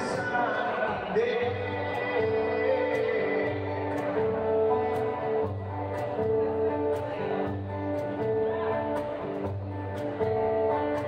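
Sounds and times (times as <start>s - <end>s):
strummed guitar: 0.0s - 11.0s.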